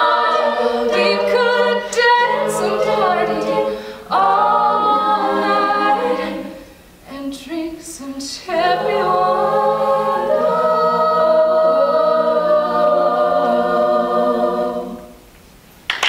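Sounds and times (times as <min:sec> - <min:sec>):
women singing a cappella harmony: 0:00.0 - 0:15.3.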